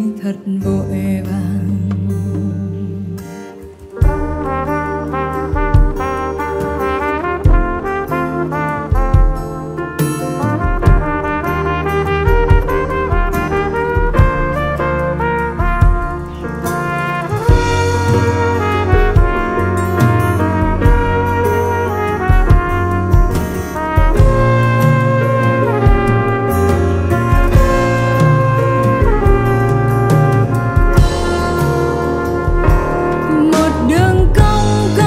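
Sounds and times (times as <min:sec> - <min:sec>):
band playing ballad: 0:00.0 - 0:35.0.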